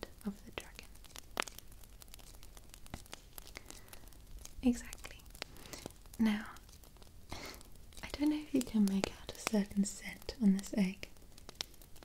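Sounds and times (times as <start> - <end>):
faint hiss: 0.0 - 12.0
fingers clicking and tapping egg: 0.7 - 12.0.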